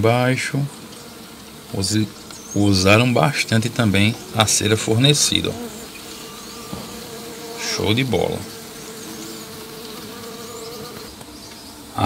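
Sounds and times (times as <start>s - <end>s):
bees buzzing: 0.0s - 12.0s.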